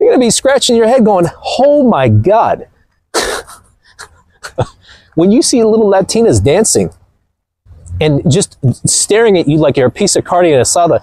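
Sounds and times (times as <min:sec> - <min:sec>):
man's breathy laugh: 0:02.8 - 0:05.2.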